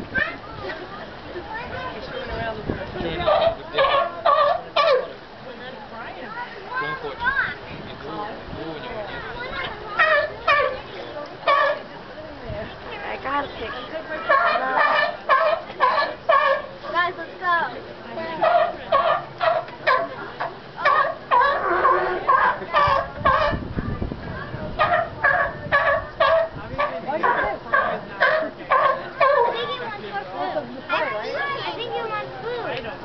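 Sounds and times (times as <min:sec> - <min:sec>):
sea lion barking: 0:03.1 - 0:05.2, 0:09.6 - 0:11.9, 0:14.0 - 0:17.0, 0:18.2 - 0:23.8, 0:24.7 - 0:30.0.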